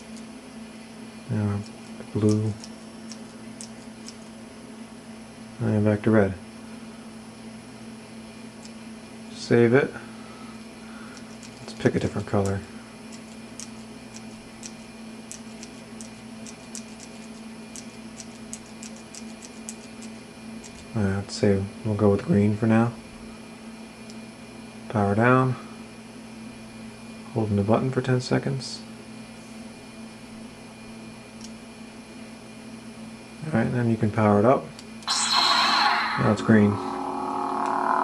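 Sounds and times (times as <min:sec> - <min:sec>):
steady low hum: 0:00.0 - 0:38.0.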